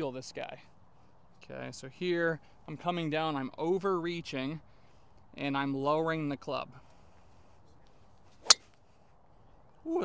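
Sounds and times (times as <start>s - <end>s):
golf driver striking ball: 8.4s - 8.6s.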